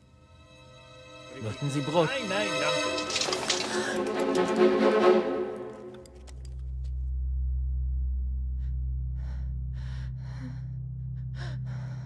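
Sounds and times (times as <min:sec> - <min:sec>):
low drone: 0:06.7 - 0:12.0.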